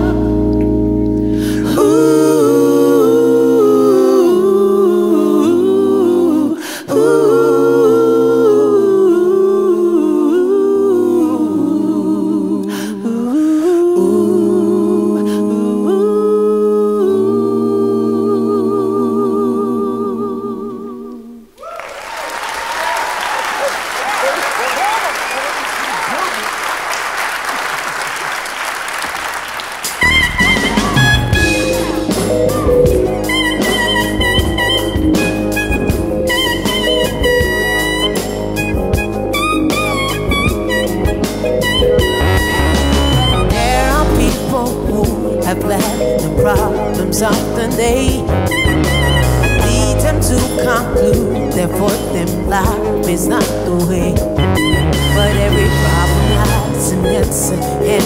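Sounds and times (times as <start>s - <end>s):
a cappella harmony singing: 1.4s - 21.6s, 30.7s - 58.0s
audience applause and cheering: 21.5s - 33.8s.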